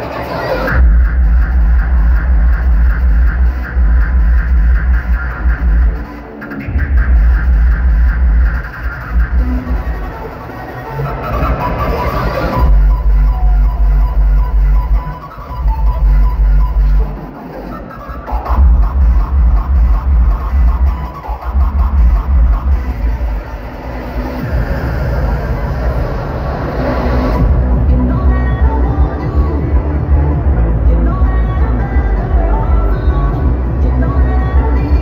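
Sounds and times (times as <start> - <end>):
hardstyle music over sound system: 0.0 - 35.0.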